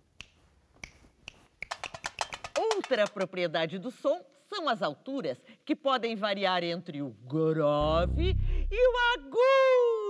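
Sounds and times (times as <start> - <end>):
finger snaps: 0.1 - 2.5.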